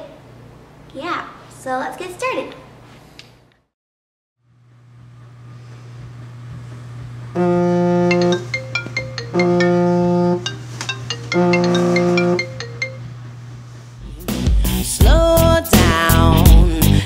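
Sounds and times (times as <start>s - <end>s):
steady low hum: 4.4s - 14.3s
short high pings: 7.4s - 13.1s
alarm tone chord: 7.4s - 13.5s.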